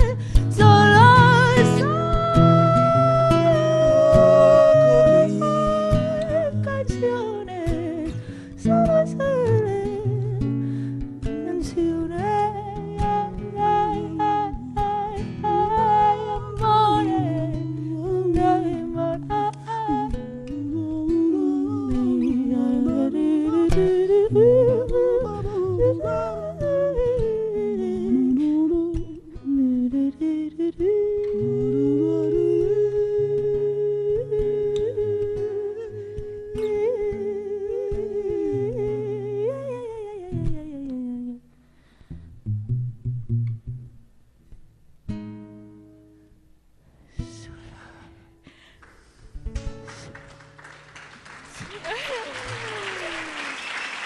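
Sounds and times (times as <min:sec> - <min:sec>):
woman singing wordlessly: 0:00.0 - 0:10.6, 0:11.2 - 0:41.5
fingerpicked classical guitar: 0:00.0 - 0:52.5.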